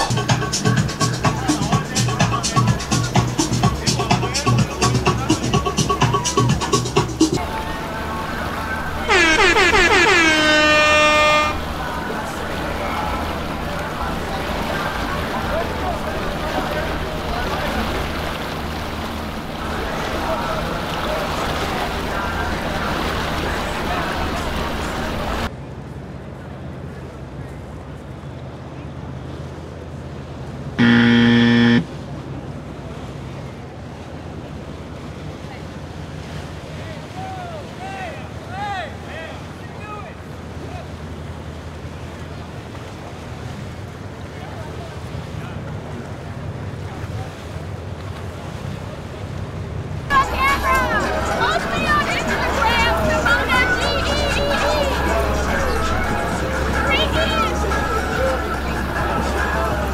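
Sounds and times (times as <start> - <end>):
water: 0.0 - 59.9
wind: 0.0 - 59.9
air horn blasts: 8.9 - 11.9, 30.8 - 31.9
game-show wrong answer buzzer: 9.1 - 11.6, 30.8 - 31.9.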